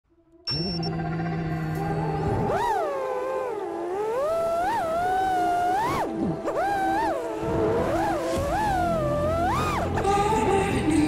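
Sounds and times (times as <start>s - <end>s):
quadcopter motors whining: 0.5s - 10.4s.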